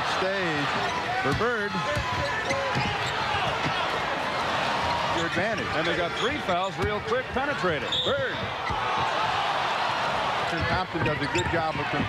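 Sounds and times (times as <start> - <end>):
arena crowd noise: 0.0 - 12.0
basketball bouncing on wooden court: 10.5 - 12.0.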